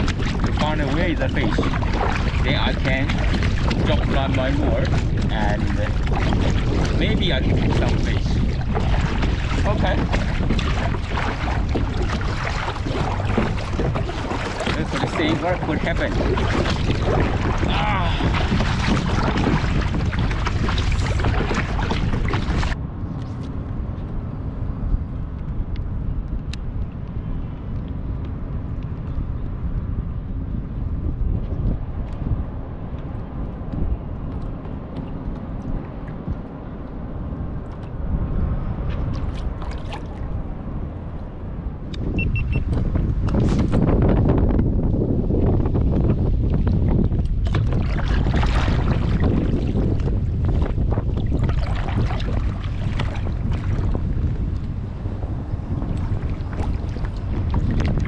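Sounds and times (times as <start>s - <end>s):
kayak paddle splashing: 0.0s - 22.8s, 38.8s - 41.1s, 45.4s - 58.0s
wind on microphone: 0.0s - 58.0s.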